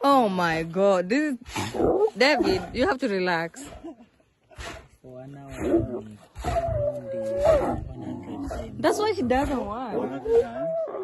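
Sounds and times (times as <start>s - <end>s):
lions growling: 1.2s - 11.0s.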